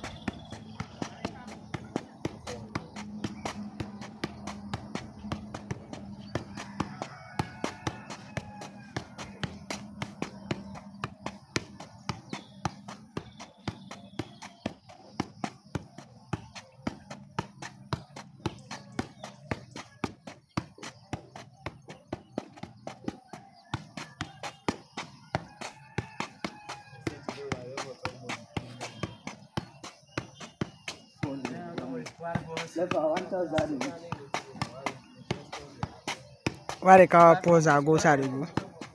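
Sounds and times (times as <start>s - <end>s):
football taps on feet: 0.0s - 38.9s.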